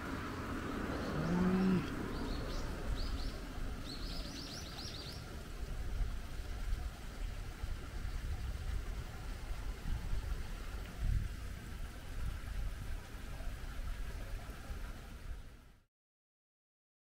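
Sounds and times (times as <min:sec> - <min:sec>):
small birds chirping: 0:00.6 - 0:05.2.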